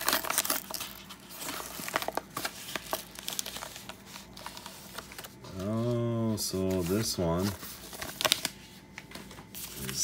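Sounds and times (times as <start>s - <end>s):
padded envelope crinkling: 0.0s - 10.0s.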